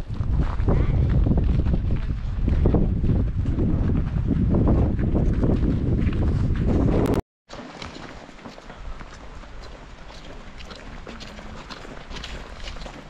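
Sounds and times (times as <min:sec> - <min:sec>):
wind rumbling on microphone: 0:00.0 - 0:07.2, 0:08.7 - 0:13.0
footsteps crunching in snow: 0:07.5 - 0:13.0.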